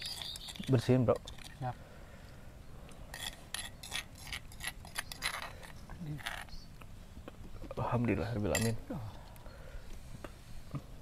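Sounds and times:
spoon scraping stone mortar: 0.0s - 1.6s, 3.0s - 6.6s.

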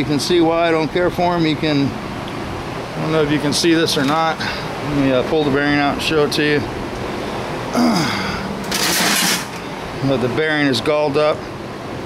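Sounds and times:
scraping rustling handling noise: 8.6s - 9.7s.

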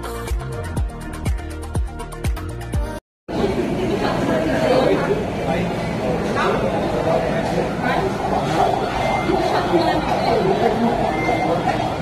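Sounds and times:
indistinct chatter of people: 3.3s - 12.0s.

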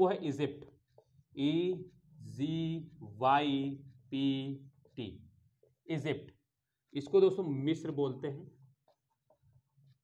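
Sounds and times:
marker writing on whiteboard: 0.0s - 7.3s, 7.9s - 10.0s
man talking: 0.0s - 8.6s.

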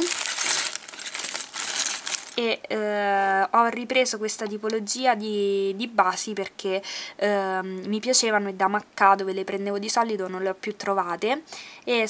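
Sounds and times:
metal rings clinking: 0.0s - 2.4s
plastic bag crinkling: 0.0s - 2.4s.

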